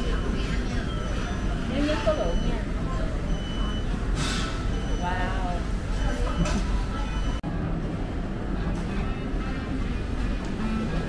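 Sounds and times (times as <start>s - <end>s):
low room noise rumble: 0.0s - 11.0s.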